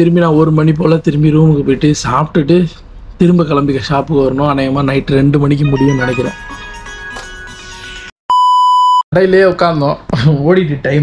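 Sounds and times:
faint background music: 0.0s - 7.7s
loud electronic bleep: 8.3s - 9.0s.

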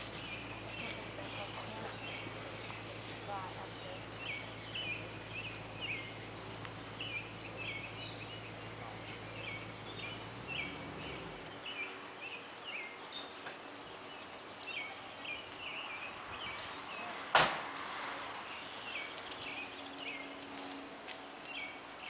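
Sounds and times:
low steady hum: 0.0s - 22.0s
small birds singing: 0.0s - 22.0s.

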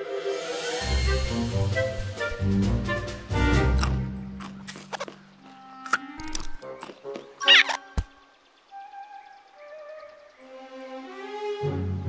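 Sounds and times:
light orchestral music: 0.0s - 12.0s
cartoon sound effects: 7.4s - 8.0s
squeaky cartoon animal call: 7.4s - 8.0s.

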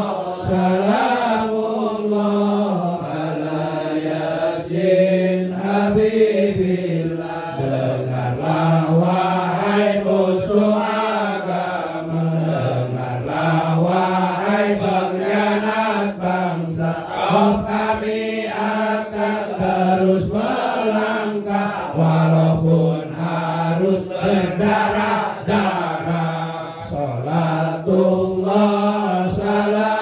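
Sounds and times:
man chanting: 0.0s - 30.0s.

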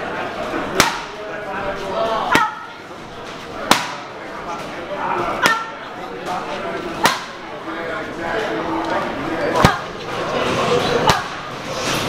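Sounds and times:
boxing gloves hitting punch paddles: 0.8s - 1.2s, 3.7s - 4.0s.

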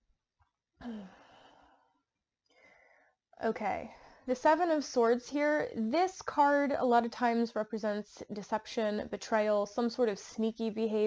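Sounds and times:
woman sighing: 0.8s - 1.6s.

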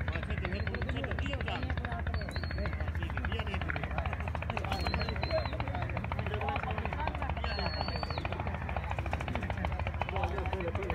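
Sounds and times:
engine chugging: 0.0s - 10.9s.

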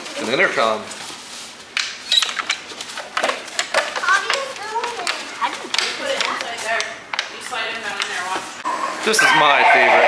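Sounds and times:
children's voices: 4.0s - 6.7s.

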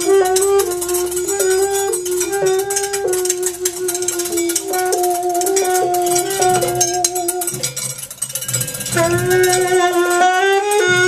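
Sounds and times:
alto saxophone long notes: 0.0s - 7.6s, 8.9s - 11.0s
drums and cymbals: 0.0s - 11.0s.

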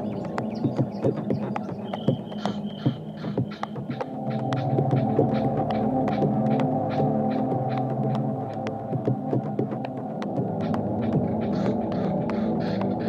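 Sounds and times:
crisp ticks: 0.0s - 13.0s
low droning tones: 0.0s - 13.0s.

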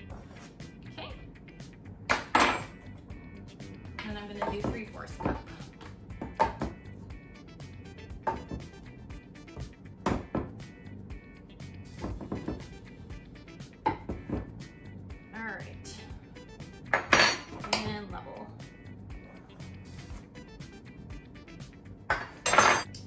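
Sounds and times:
music: 0.0s - 23.0s.

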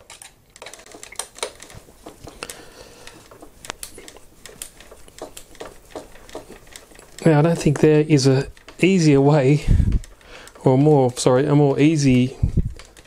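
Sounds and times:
hand screwdriver turning screw: 0.0s - 13.0s.

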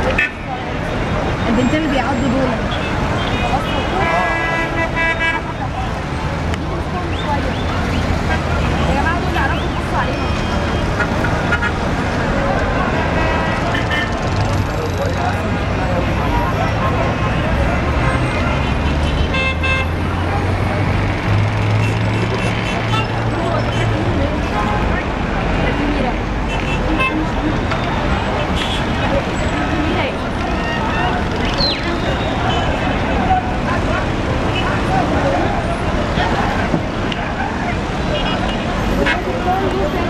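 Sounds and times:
city traffic: 0.0s - 40.0s
people talking and shouting: 0.0s - 40.0s
car horn honking: 2.7s - 5.6s, 18.0s - 20.1s, 26.4s - 27.4s, 28.4s - 29.1s.

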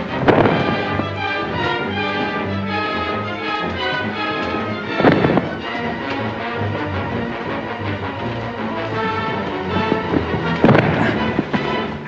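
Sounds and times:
orchestral music: 0.0s - 12.0s.

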